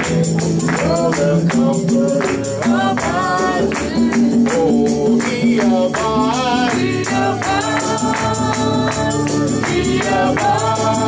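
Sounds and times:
man singing gospel: 0.0s - 11.0s
tambourine beat: 0.0s - 11.0s
voices singing along: 0.6s - 11.0s.

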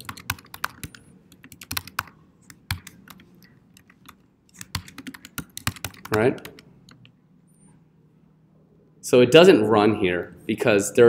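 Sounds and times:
keyboard typing: 0.0s - 7.1s.

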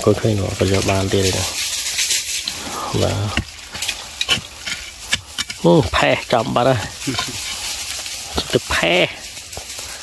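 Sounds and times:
gritty dirt scraping: 0.0s - 10.0s.

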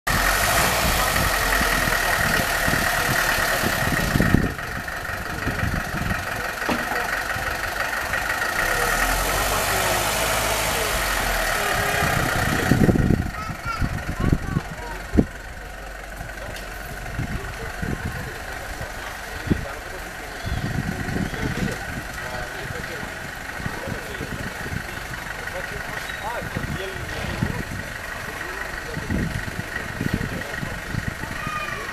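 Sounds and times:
car engine idling: 0.0s - 31.9s
street noise: 0.0s - 31.9s
voices: 0.1s - 31.9s.

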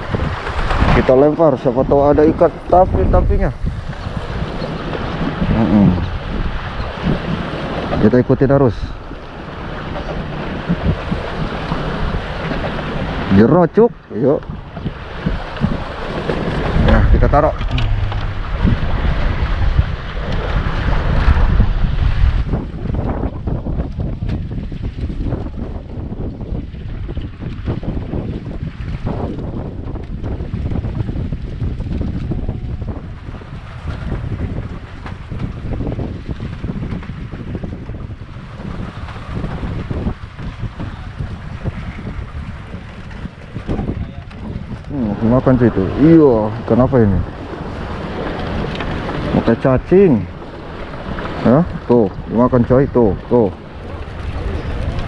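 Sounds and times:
heavy low rumble: 0.0s - 7.2s, 16.6s - 23.8s
sea water washing: 0.0s - 55.0s
wind gusting over microphone: 0.0s - 55.0s.

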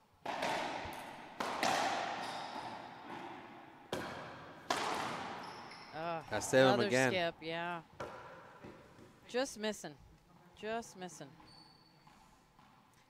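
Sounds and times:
racquetball cracks echoing: 0.2s - 5.9s, 8.0s - 9.1s.

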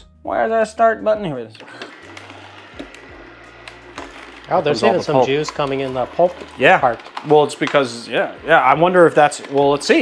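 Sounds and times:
juicer motor humming and whining: 1.6s - 10.0s.

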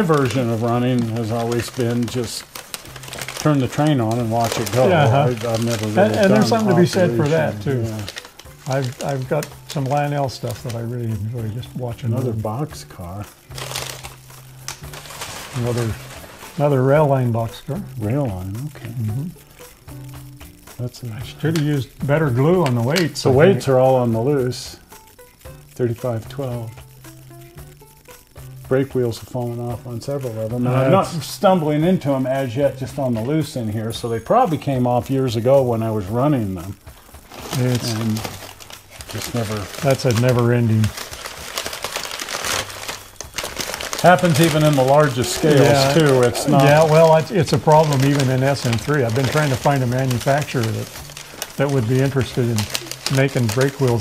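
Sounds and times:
packing wrap crinkling: 0.0s - 54.0s.

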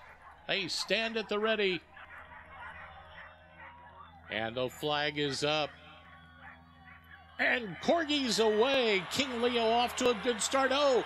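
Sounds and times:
dogs yipping: 0.0s - 7.5s
faint outdoor crowd murmur: 0.0s - 11.0s.

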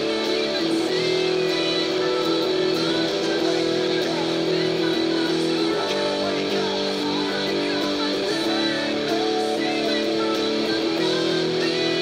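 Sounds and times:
electric guitar playing rock: 0.0s - 12.0s.

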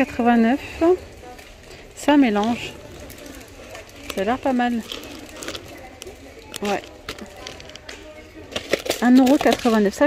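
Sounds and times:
plastic tub clicks and rustles: 2.4s - 10.0s.

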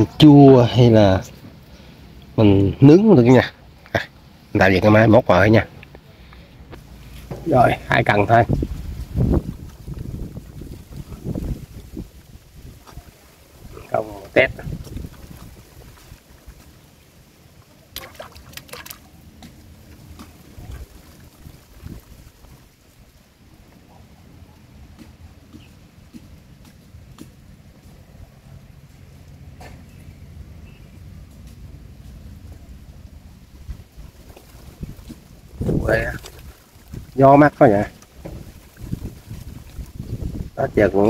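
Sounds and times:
man speaking: 2.4s - 5.7s, 7.3s - 8.6s, 13.7s - 14.7s
wind rumble on microphone: 6.7s - 16.8s, 20.1s - 23.8s, 31.0s - 41.0s.

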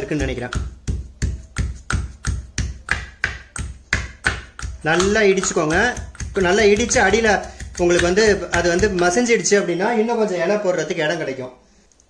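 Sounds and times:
stone pestle pounding leaves: 0.0s - 9.3s.

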